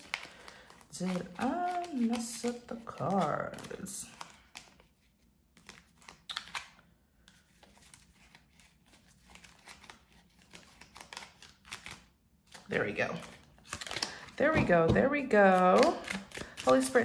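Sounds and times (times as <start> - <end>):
cards being shuffled: 0.0 - 17.0.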